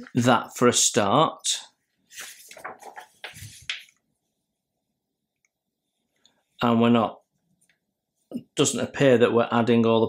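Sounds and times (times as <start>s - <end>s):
paper page rustling: 2.1s - 4.0s.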